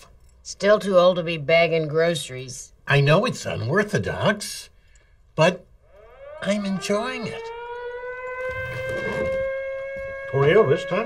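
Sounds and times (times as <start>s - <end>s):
warning siren wailing: 5.4s - 11.0s.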